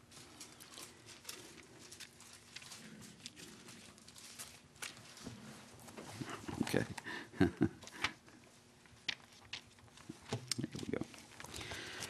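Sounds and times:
thin pages rustling: 0.0s - 6.9s.

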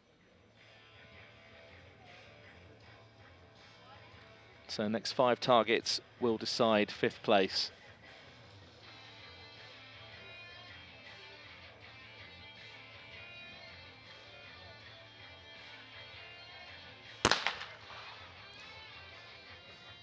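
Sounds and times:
shotgun shot with echo: 17.2s - 18.7s.

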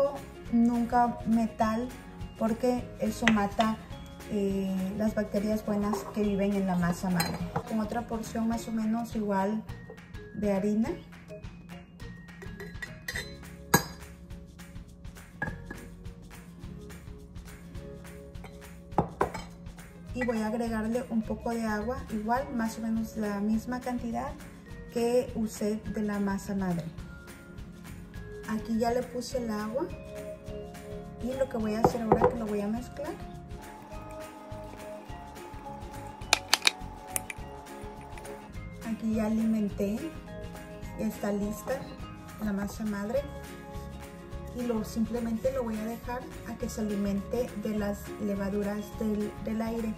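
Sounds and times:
background music: 0.0s - 49.9s
scoop clinking on glass jars: 7.2s - 7.7s, 12.4s - 14.0s, 36.3s - 37.4s
spatula clicking against glass: 36.3s - 37.4s, 38.0s - 38.4s.

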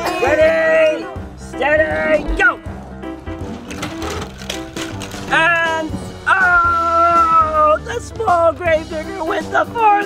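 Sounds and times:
background music: 0.0s - 10.0s
plastic toy trucks rattling: 3.5s - 5.6s.

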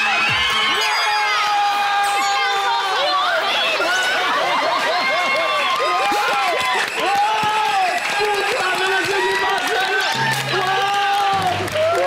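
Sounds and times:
people cheering and shouting: 0.0s - 12.0s
applause: 4.3s - 12.0s
low bass background music: 10.1s - 12.0s.

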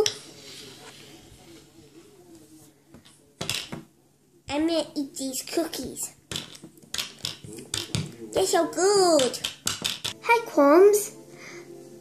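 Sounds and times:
toy doll tapping on tabletop: 9.2s - 10.2s.

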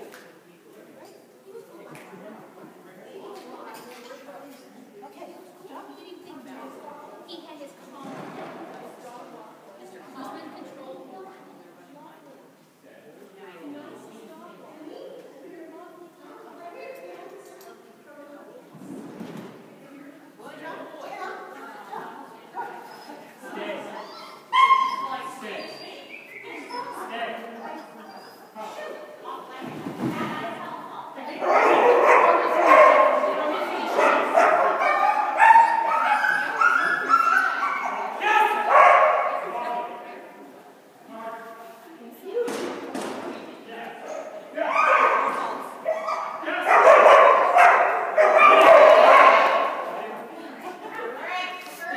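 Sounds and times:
voices talking indoors: 0.0s - 51.9s
dog yelping: 24.0s - 27.0s, 34.0s - 39.0s, 44.7s - 49.7s.

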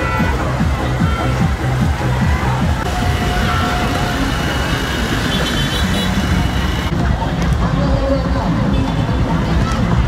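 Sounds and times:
crowd chatter: 0.0s - 10.0s
motorbike engines running: 0.0s - 10.0s.

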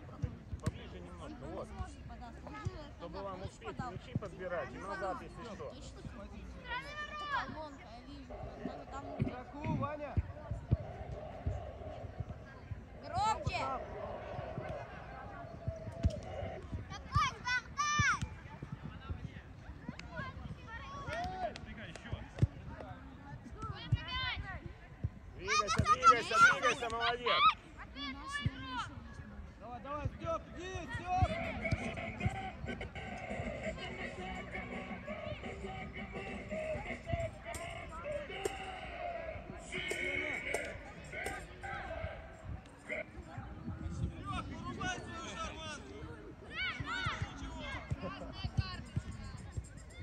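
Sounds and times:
children calling and shouting: 10.8s - 18.5s, 25.4s - 29.0s, 30.7s - 49.1s.

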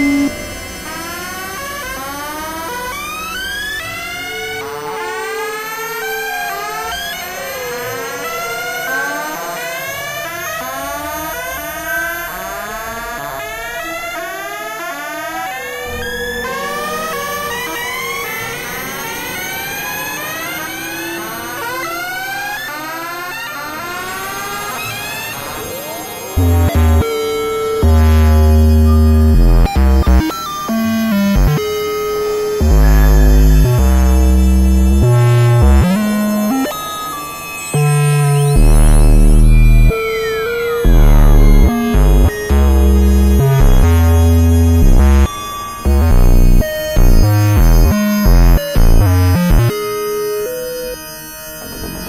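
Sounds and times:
rising synthesizer glides: 0.0s - 10.3s, 15.7s - 22.7s, 23.8s - 52.0s
long held synth tones: 0.0s - 11.1s, 15.8s - 22.6s, 24.0s - 52.0s.

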